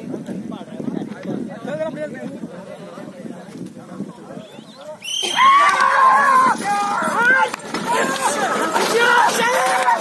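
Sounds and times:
crowd murmur: 0:00.0 - 0:10.0
crowd yelling shrilly: 0:05.0 - 0:10.0.

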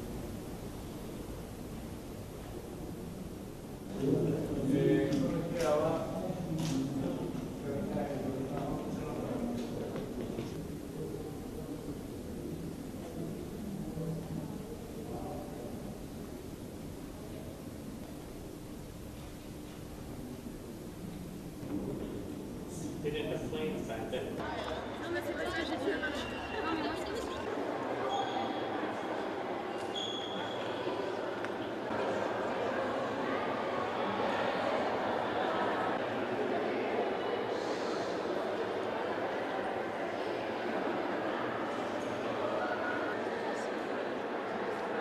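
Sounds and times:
crowd chatter: 0:00.0 - 0:45.0.

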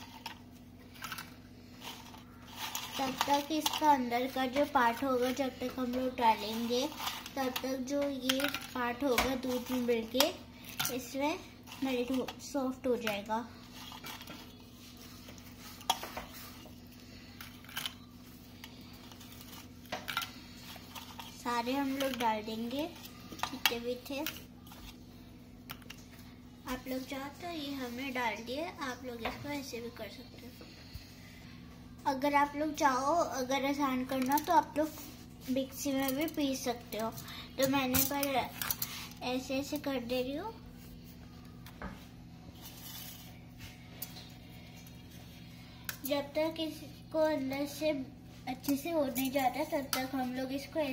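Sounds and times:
steady low hum: 0:00.0 - 0:50.9.

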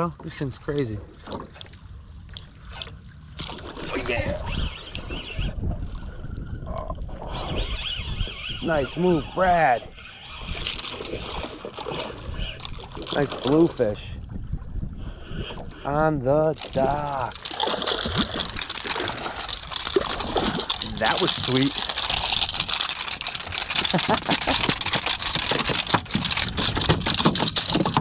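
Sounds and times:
water around boat: 0:00.0 - 0:28.0
wind on microphone: 0:03.6 - 0:28.0
fish flopping on boat deck: 0:16.6 - 0:28.0.

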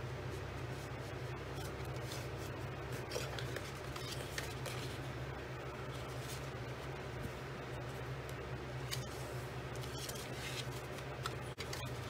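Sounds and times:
steady low hum: 0:00.0 - 0:12.0
paper crinkling and rustling: 0:01.5 - 0:05.1, 0:08.9 - 0:12.0.

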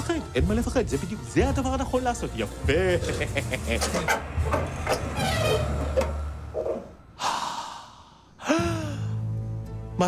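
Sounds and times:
person gasping: 0:07.2 - 0:09.3.

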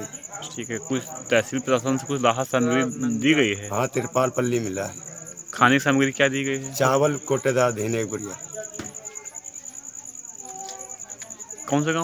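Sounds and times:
crickets chirping: 0:00.0 - 0:12.0
faint voices: 0:00.0 - 0:12.0.

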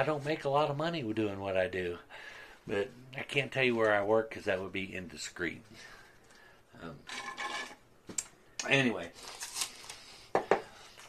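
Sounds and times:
cup scraping on desk: 0:07.1 - 0:07.8.

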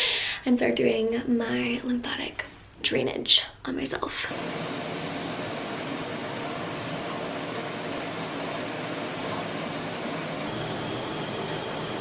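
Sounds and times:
shower water spraying: 0:04.3 - 0:12.0.

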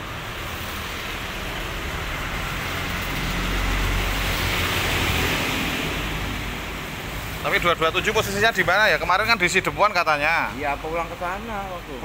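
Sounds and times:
road vehicle passing by: 0:00.0 - 0:12.0.

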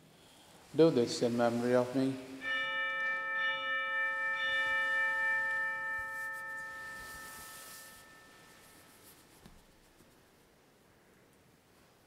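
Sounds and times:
altar bell ringing: 0:02.4 - 0:09.4.

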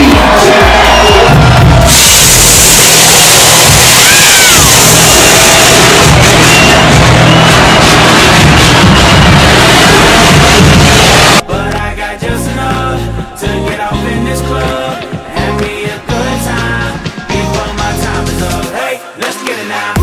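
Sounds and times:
crowd cheering: 0:00.0 - 0:11.4
dance music with bass beat: 0:00.0 - 0:18.8.

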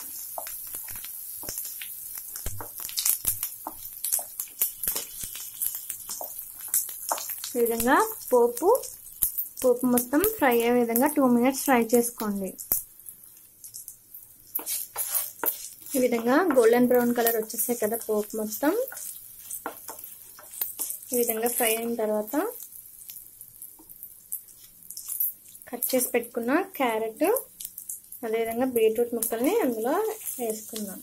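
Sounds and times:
wooden spatula stirring in pan: 0:00.0 - 0:12.1, 0:14.4 - 0:23.1, 0:27.4 - 0:31.0
spices frying in hot oil: 0:00.0 - 0:31.0
person talking: 0:07.6 - 0:08.9, 0:09.6 - 0:12.6, 0:16.0 - 0:19.0, 0:21.1 - 0:22.6, 0:25.7 - 0:27.5, 0:28.2 - 0:31.0.

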